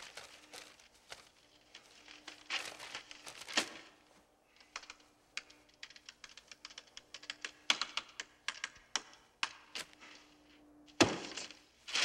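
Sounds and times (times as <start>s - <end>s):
faint steady hum: 0.0s - 12.0s
typing on keyboard: 4.6s - 9.8s.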